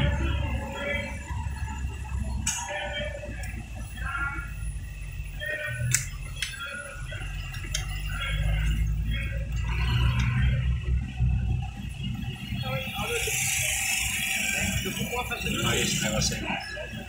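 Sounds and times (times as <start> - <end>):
car engine and tyres rumbling: 0.0 - 17.0
faint indistinct voices: 0.0 - 17.0
sharp clicks: 5.8 - 6.6.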